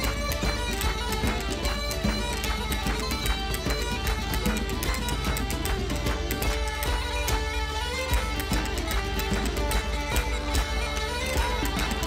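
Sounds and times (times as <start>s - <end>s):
folk band playing dance tune: 0.0s - 12.0s.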